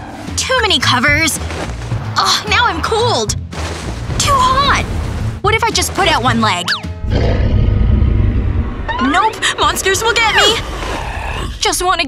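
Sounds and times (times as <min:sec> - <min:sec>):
deep rumbling monster growl: 0:07.0 - 0:11.8.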